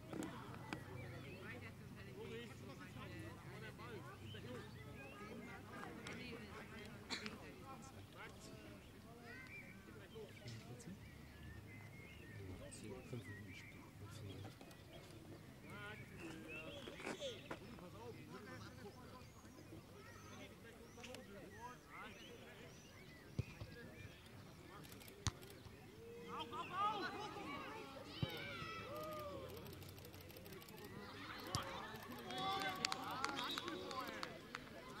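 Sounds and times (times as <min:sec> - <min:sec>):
distant footballers calling out: 0:00.0 - 0:35.0.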